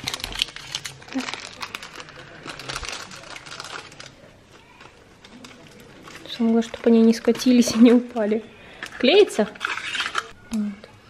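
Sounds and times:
plastic packaging crinkling: 0.0 - 10.4.

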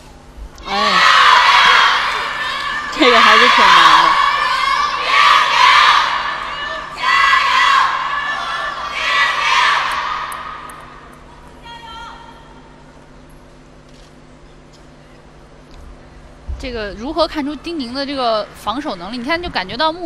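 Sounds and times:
arena crowd cheering: 0.6 - 12.6.

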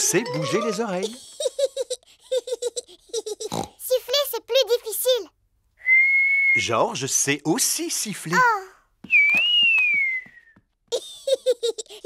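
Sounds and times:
small child giggling: 1.0 - 3.7, 10.9 - 12.0.

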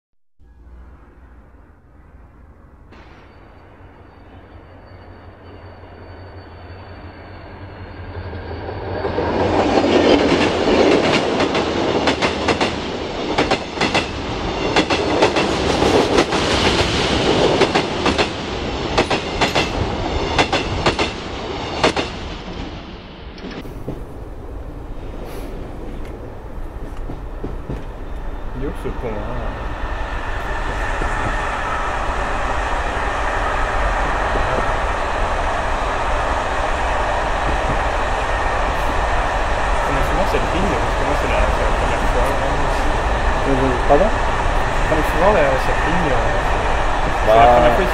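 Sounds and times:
train wheels clicking over rail joints: 9.7 - 22.3, 25.0 - 28.4.

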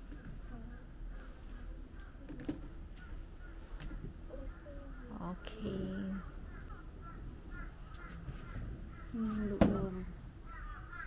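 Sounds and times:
faint bird calls: 0.0 - 11.0.

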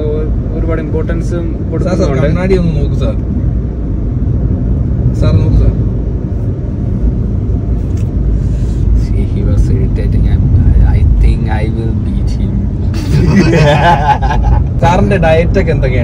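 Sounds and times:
men talking: 0.0 - 3.4, 5.0 - 5.9, 8.6 - 16.0
car cabin road rumble: 0.0 - 16.0.

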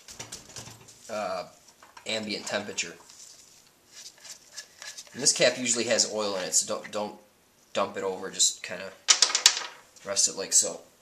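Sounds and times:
faint rubbing: 0.7 - 5.6.

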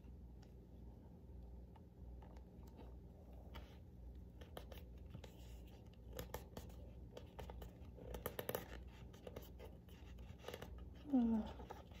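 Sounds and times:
sticker handling clicks and scratches: 4.4 - 10.9.

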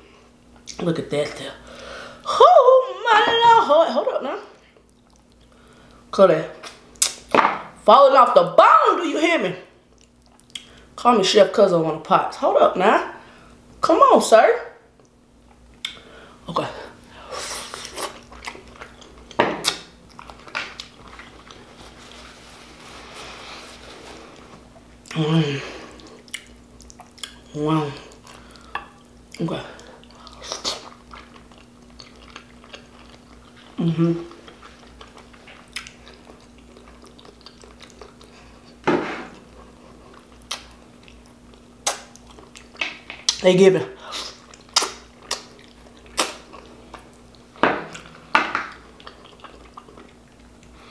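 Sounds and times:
wet chewing and mouth smacking: 4.8 - 5.6, 9.9 - 10.8, 17.7 - 22.2, 25.9 - 38.8, 39.4 - 43.4, 44.1 - 50.9.

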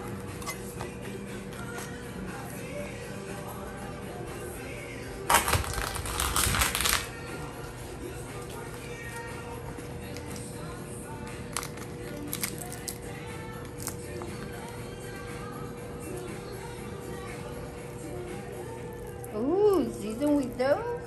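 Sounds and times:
shells cracking open: 5.3 - 7.1, 11.5 - 13.1, 13.7 - 14.3
knife crunching through shell: 11.6 - 13.0.

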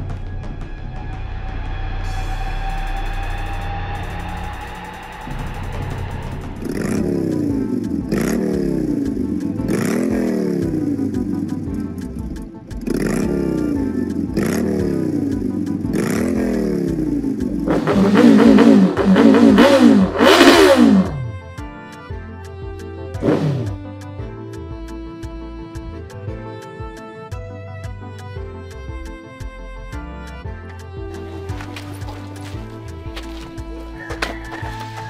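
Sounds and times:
background music: 0.0 - 35.0
motorcycle engine revving: 2.1 - 21.4, 23.1 - 23.8, 31.2 - 35.0.

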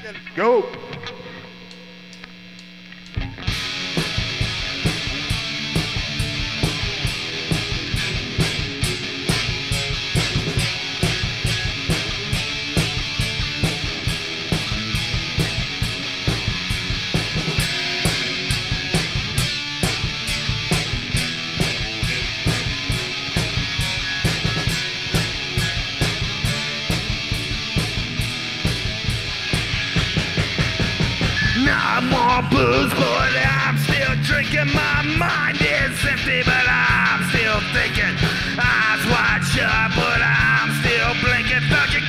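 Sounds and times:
heavy rock music: 0.0 - 2.3, 3.1 - 42.0.

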